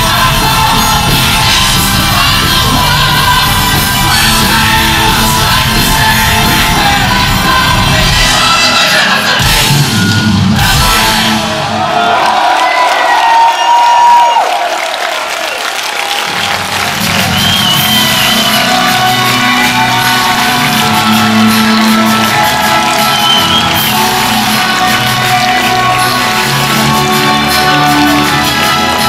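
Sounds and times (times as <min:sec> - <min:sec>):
loud power metal band: 0:00.0 - 0:12.5, 0:16.8 - 0:29.0
crowd shouting and cheering: 0:00.0 - 0:29.0.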